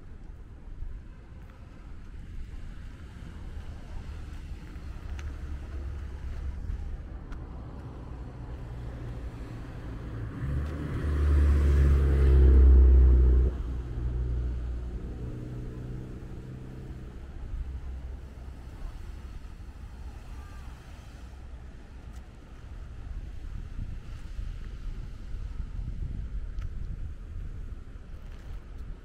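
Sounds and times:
low rumble: 0.0s - 29.0s.

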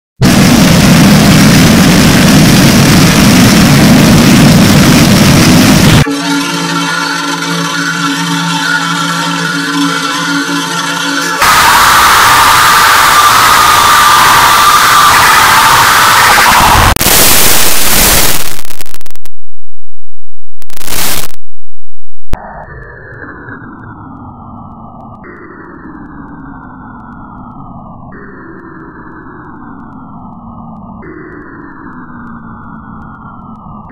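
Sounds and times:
distorted static noise stuttering: 0.2s - 19.4s, 20.5s - 21.5s.

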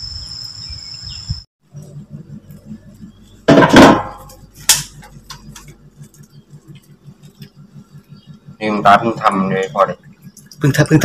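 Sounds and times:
low pulsing hum: 0.6s - 11.0s.

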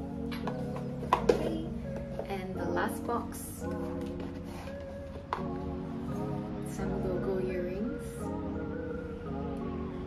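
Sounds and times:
gentle background music: 0.0s - 10.0s.

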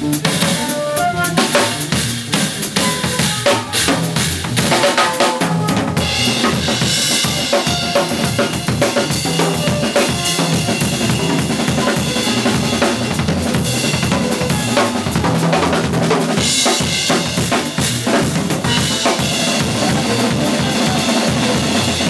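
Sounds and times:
bass drum strokes: 0.0s - 22.0s
cymbals: 0.0s - 22.0s
snare drum strokes: 0.0s - 22.0s.

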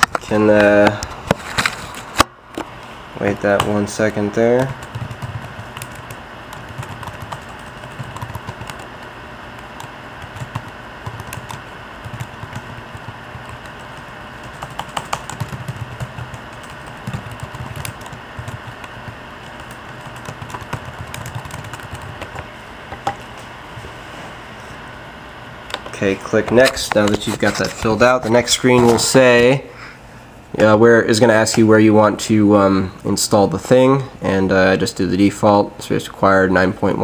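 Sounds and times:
typing on computer keyboard: 4.6s - 8.9s, 9.6s - 18.9s, 19.5s - 22.4s.

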